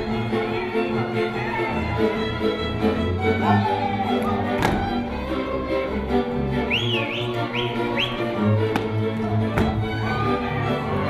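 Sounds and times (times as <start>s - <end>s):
folk dance music with fiddles: 0.0s - 11.0s
quick rising whistled notes: 6.6s - 8.4s
low string bass: 8.4s - 11.0s.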